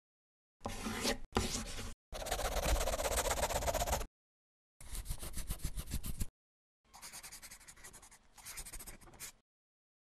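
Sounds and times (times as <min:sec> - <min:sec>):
pen scribbling on paper: 0:02.2 - 0:04.1, 0:06.9 - 0:09.4.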